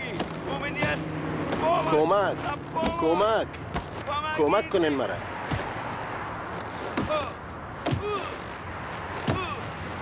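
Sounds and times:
sharp thuds: 2.4 - 4.2, 5.4 - 9.7.

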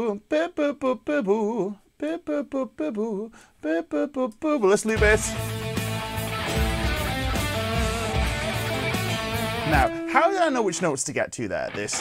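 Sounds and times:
rock music with drums and guitar: 4.9 - 10.1.

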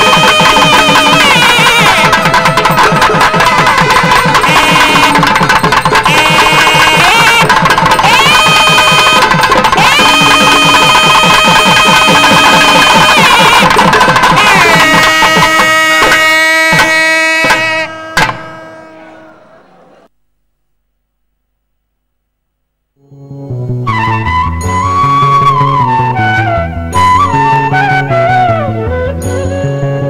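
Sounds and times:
fast steady drumming: 0.0 - 18.8
reed pipe playing long notes: 0.0 - 20.1.

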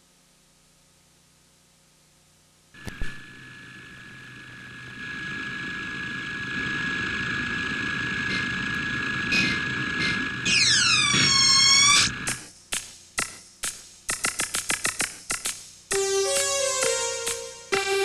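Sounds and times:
steady high synthesizer tone: 15.9 - 18.0.

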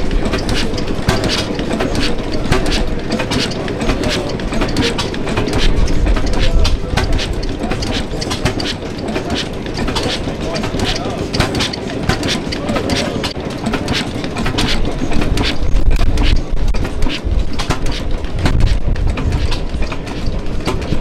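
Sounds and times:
stationary engine clattering: 0.0 - 21.0.

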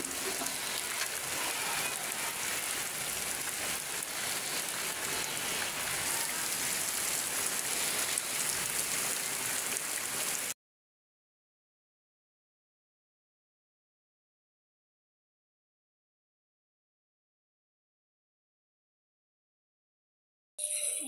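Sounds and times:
heavy rain on flooded ground: 0.0 - 10.6.

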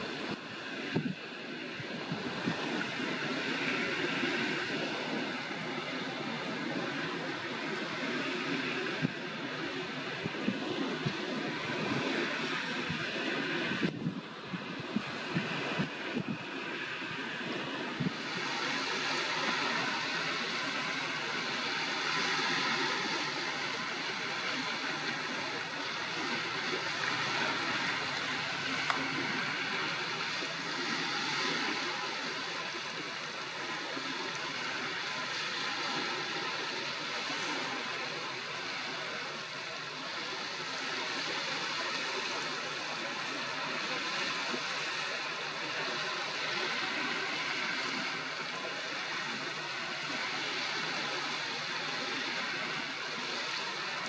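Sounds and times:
small waves lapping: 0.0 - 54.0
wind: 0.0 - 54.0.

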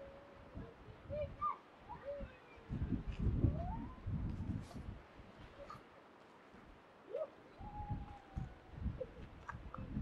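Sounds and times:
wind on microphone: 0.0 - 5.8, 7.6 - 10.0.

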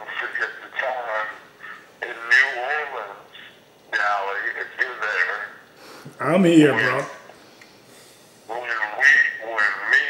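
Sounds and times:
man's voice through phone speaker: 0.0 - 7.2, 8.5 - 10.0.

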